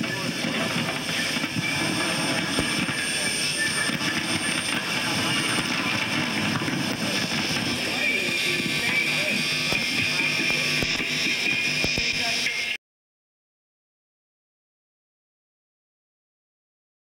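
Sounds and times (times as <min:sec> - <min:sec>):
indistinct voices: 0:00.0 - 0:12.8.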